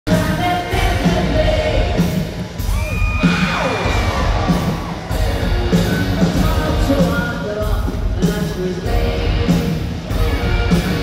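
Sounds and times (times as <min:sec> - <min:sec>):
live rock band with vocals: 0:00.1 - 0:11.0.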